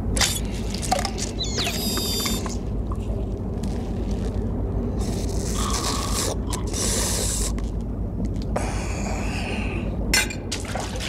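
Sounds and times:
low drone: 0.0 - 11.0
man slurping through a tube: 5.0 - 7.8.

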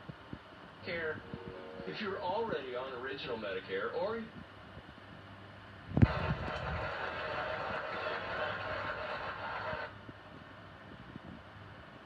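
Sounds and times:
television speaker pop: 6.0 - 6.9.

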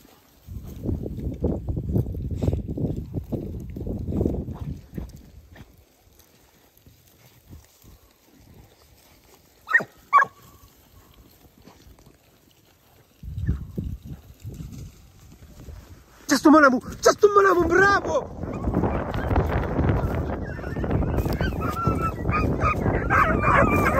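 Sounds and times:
rustling through brush: 0.0 - 23.9
hound barking: 9.6 - 10.5, 20.0 - 23.9.

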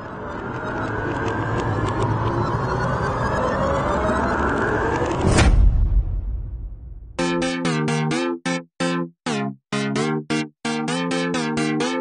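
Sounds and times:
rumbling build-up: 0.0 - 7.2
heavy hit with deep boom: 5.2 - 7.2.

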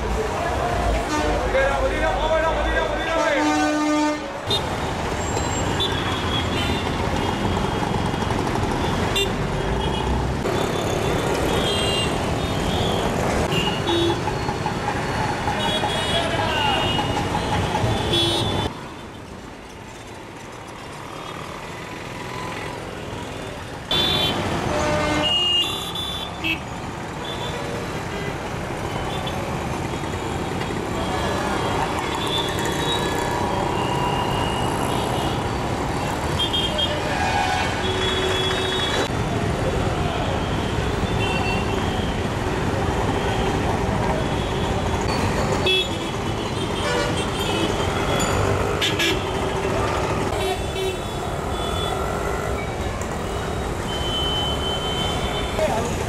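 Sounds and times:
busy street traffic: 0.0 - 56.0.

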